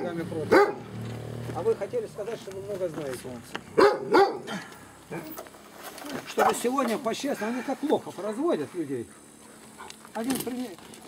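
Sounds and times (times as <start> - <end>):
dog barking: 0.0 - 0.9, 3.8 - 4.5.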